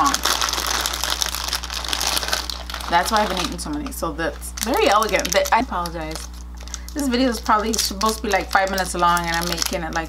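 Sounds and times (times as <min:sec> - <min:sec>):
wrapper crinkling: 0:00.0 - 0:10.0.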